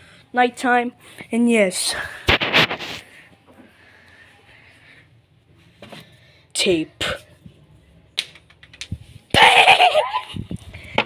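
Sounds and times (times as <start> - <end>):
hand rubbing phone microphone: 2.3 - 3.1.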